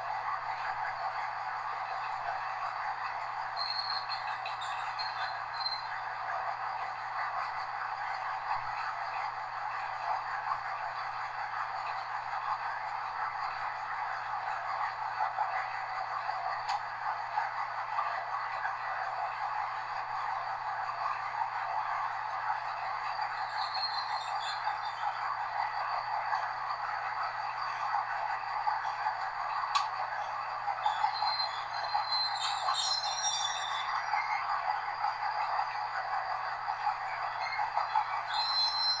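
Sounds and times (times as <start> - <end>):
train running noise from cab: 0.0 - 39.0.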